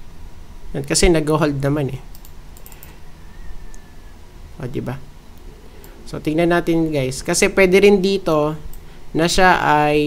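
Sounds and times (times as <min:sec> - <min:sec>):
computer keyboard clicks: 0:02.1 - 0:03.0.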